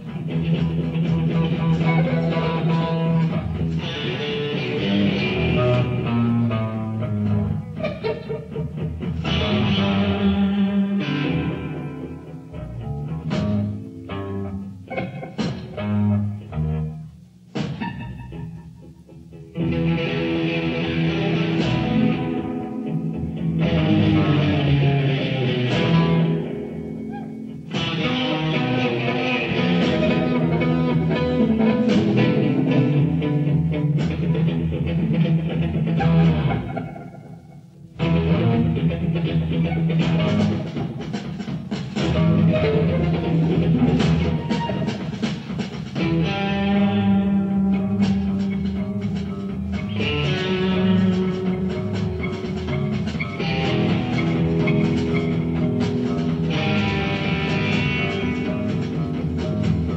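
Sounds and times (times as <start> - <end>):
electric guitar: 0.0 - 59.9
live rock band playing: 0.0 - 59.9.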